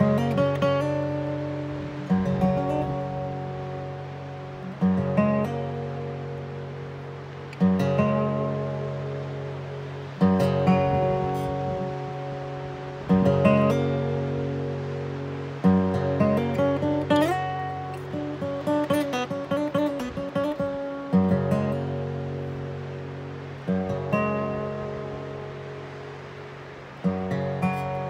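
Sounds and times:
fingerpicked acoustic guitar: 0.0 - 28.0.

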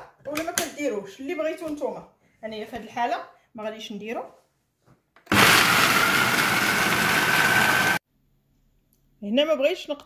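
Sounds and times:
blender crushing frozen fruit: 5.3 - 8.0
blender motor whining: 5.3 - 8.0.

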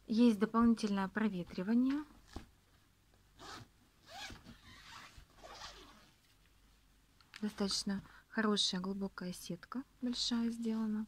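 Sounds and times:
zipper being pulled: 3.4 - 6.2.

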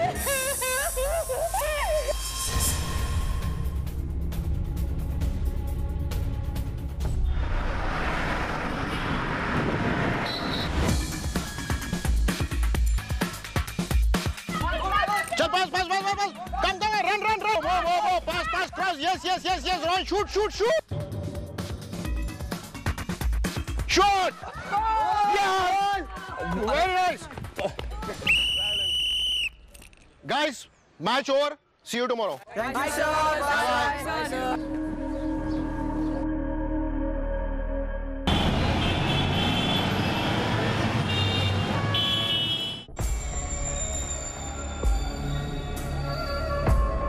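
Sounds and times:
traffic noise: 7.0 - 11.3, 38.3 - 46.6
sports whistle blast: 10.2 - 10.9, 28.2 - 29.7.

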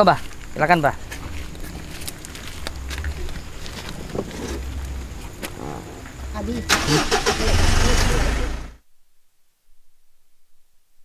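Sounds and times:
murmured voices: 0.0 - 8.8
car engine idling: 1.0 - 8.8.

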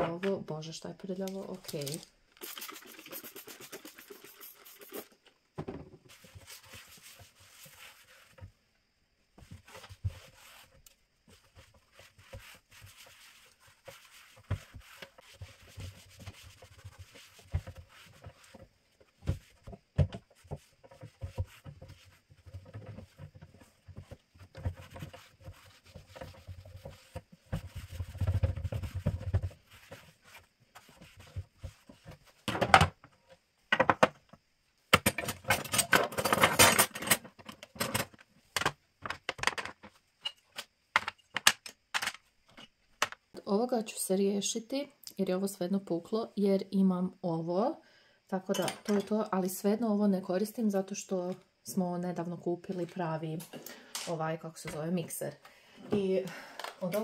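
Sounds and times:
kitchen utensils clattering: 48.5 - 49.2.

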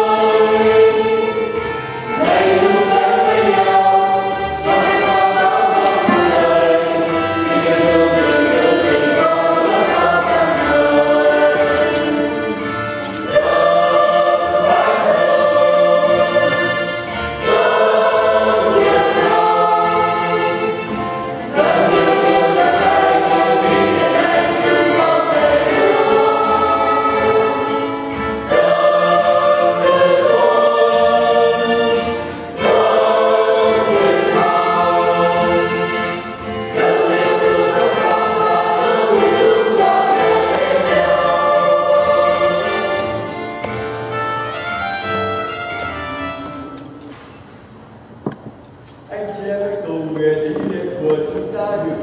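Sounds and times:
church choir singing a hymn: 0.0 - 44.8.

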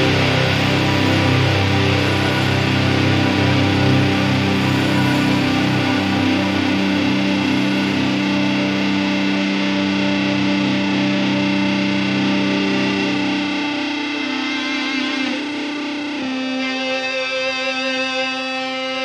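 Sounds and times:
distorted electric guitar drone: 0.0 - 19.0.

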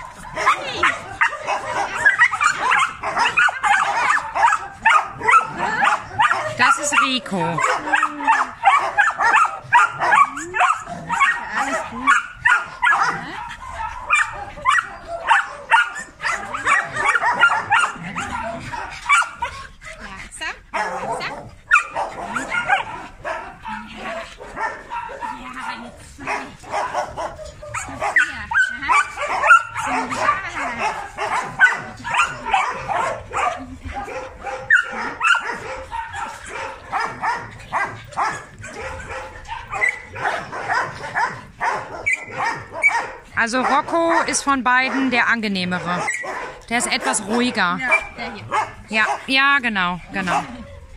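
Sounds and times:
dogs barking and yapping: 0.0 - 50.9.

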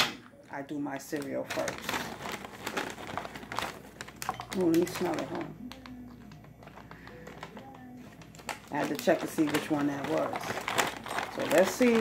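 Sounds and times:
plastic bag crinkling: 0.5 - 12.0.

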